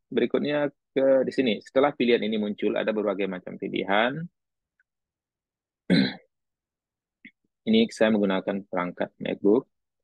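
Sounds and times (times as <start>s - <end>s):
man clearing throat: 5.9s - 6.3s.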